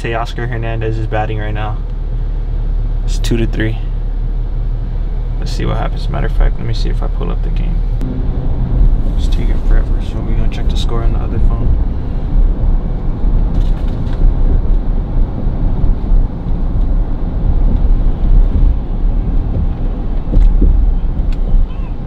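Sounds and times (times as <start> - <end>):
car cabin road rumble: 0.0 - 22.0.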